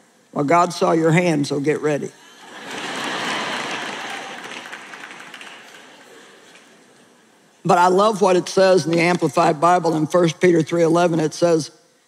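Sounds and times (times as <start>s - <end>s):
audience applauding: 2.6s - 6.7s.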